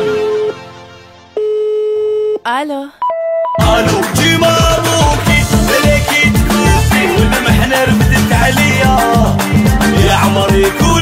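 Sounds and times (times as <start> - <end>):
telephone-like beep: 1.4 - 2.4, 3.0 - 3.6
pop song: 3.6 - 11.0.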